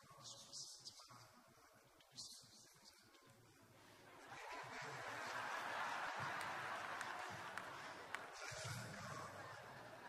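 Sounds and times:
congregation laughing: 0:04.1 - 0:10.0
sharp claps: 0:05.2 - 0:09.5.

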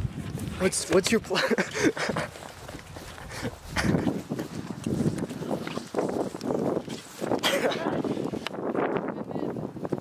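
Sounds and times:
handheld microphone jostling: 0:00.0 - 0:10.0
running footsteps on grass: 0:00.0 - 0:10.0.

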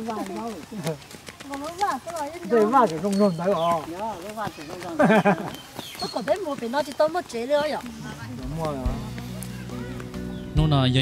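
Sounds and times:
people talking: 0:06.0 - 0:11.0.

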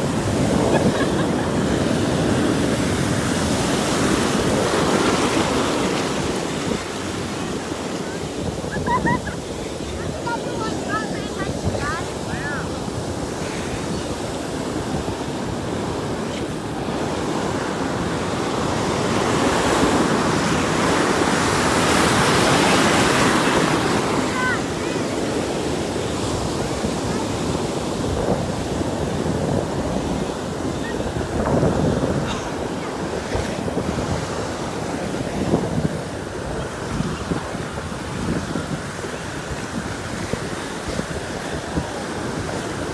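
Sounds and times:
ocean surf washing: 0:00.0 - 0:42.9
wind on microphone: 0:00.0 - 0:42.9.

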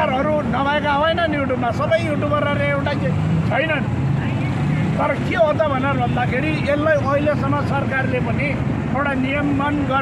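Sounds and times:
man talking: 0:00.0 - 0:03.9, 0:05.0 - 0:10.0
street traffic hum: 0:00.0 - 0:10.0.

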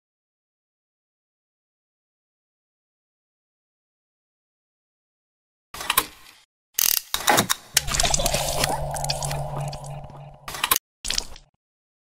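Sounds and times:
falling sweep: 0:07.8 - 0:10.8
steady low hum: 0:07.8 - 0:10.8.

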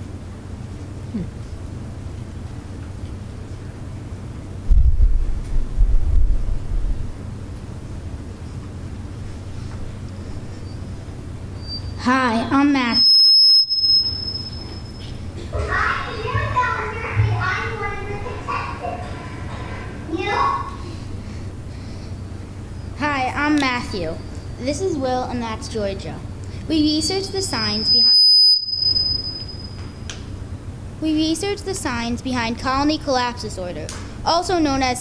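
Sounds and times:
steady low hum: 0:00.0 - 0:35.0
microphone feedback squeal: 0:10.5 - 0:12.0, 0:12.8 - 0:15.2, 0:27.6 - 0:30.0
faint high-pitched whine: 0:22.7 - 0:30.0.

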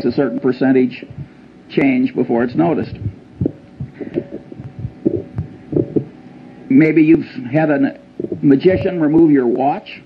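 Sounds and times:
faint steady hum: 0:00.0 - 0:10.0
soft low thumps: 0:00.9 - 0:06.5, 0:08.1 - 0:09.3.

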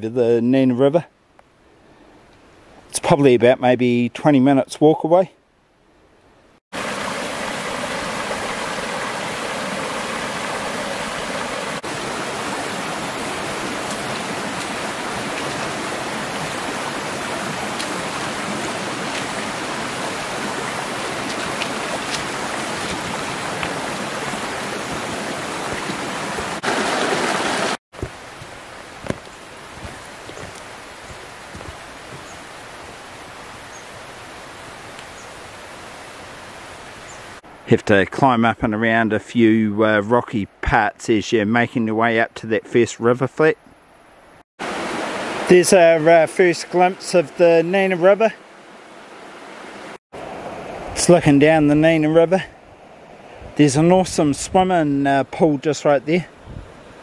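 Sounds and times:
stream rushing over stones: 0:06.7 - 0:37.4, 0:44.6 - 0:52.3.

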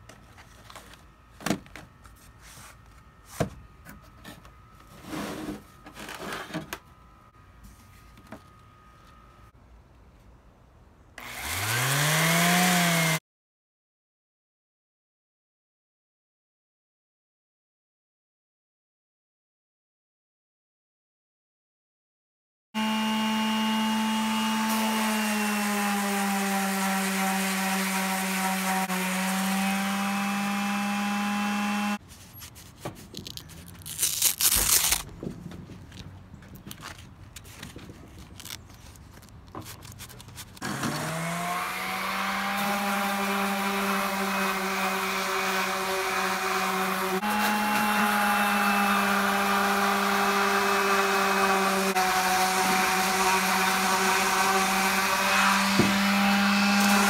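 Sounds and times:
packets rustling and scraping: 0:00.0 - 0:06.8, 0:32.0 - 0:41.0
orbital sander sanding wood: 0:11.2 - 0:13.2, 0:22.8 - 0:32.3, 0:40.5 - 0:57.0.

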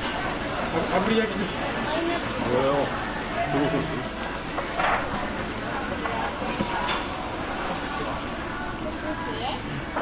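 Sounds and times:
meat sizzling on grill: 0:00.0 - 0:10.0.

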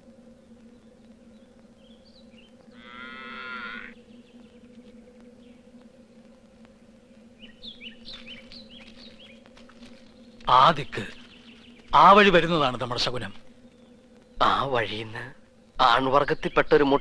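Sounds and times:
faint steady hum: 0:00.0 - 0:17.0
bird chirping: 0:00.3 - 0:04.7, 0:07.4 - 0:17.0
cow mooing: 0:02.8 - 0:04.0.

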